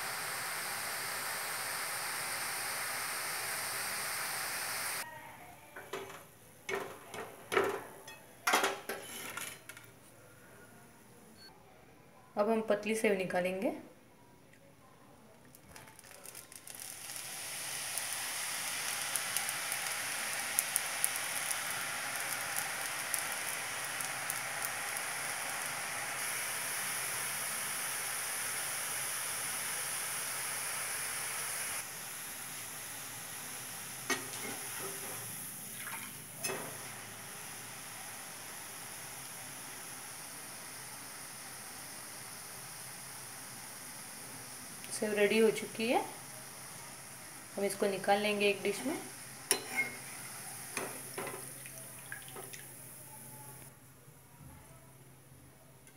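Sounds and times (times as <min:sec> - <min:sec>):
deep-frying sizzle: 0:00.0 - 0:05.1, 0:15.9 - 0:53.7.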